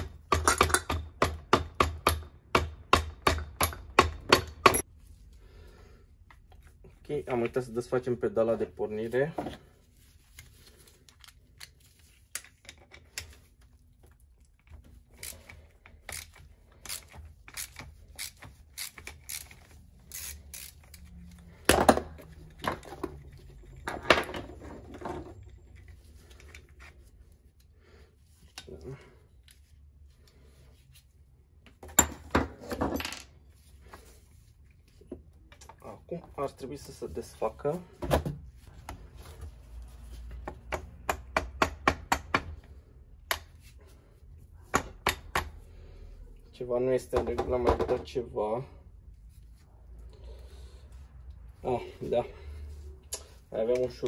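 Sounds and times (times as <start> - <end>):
ratchet clicking: 15.2 - 21.1.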